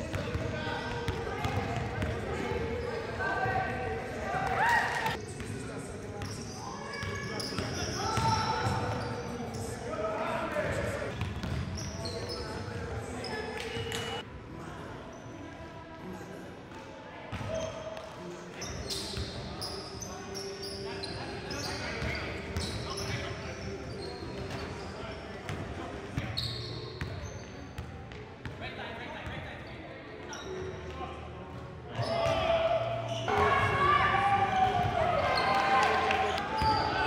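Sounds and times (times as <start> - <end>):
shoe squeaks: 6.2 - 9.7, 11.4 - 12.6, 18.6 - 24.9, 26.2 - 27.8, 33.1 - 33.3.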